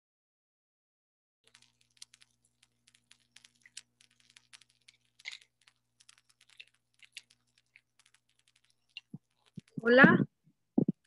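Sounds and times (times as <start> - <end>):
typing on a computer keyboard: 1.5 - 9.9
low electrical hum: 1.5 - 11.0.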